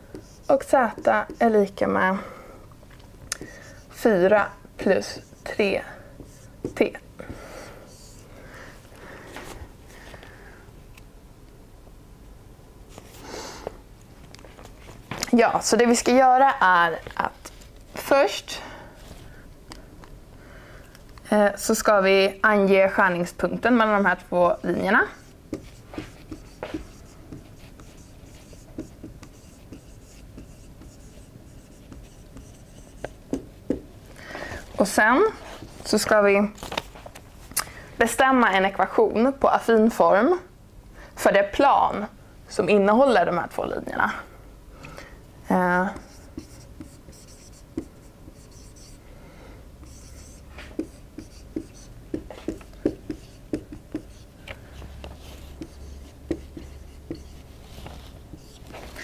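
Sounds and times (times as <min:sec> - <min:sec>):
marker writing on whiteboard: 0:00.0 - 0:01.8, 0:03.4 - 0:04.2, 0:04.8 - 0:07.0, 0:07.9 - 0:08.2, 0:23.8 - 0:33.9, 0:45.5 - 0:49.0, 0:49.8 - 0:59.0.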